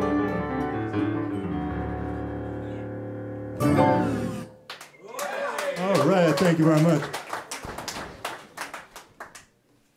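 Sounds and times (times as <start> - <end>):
audience clapping: 4.6 - 9.6.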